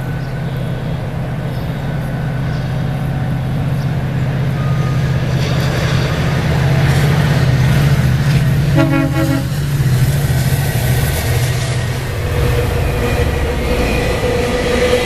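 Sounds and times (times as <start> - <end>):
diesel locomotive engine drone: 0.0 - 15.0
train wheel and rail noise: 0.0 - 15.0.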